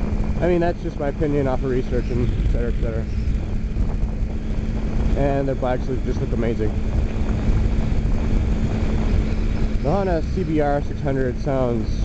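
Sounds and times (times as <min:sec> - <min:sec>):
motorcycle engine humming: 0:00.0 - 0:12.0
wind buffeting microphone: 0:00.0 - 0:12.0.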